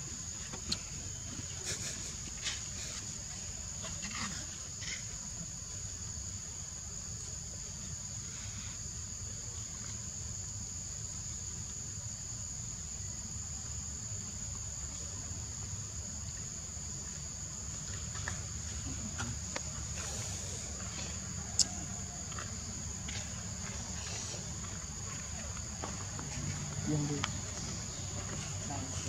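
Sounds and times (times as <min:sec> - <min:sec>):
insects droning: 0:00.0 - 0:29.0.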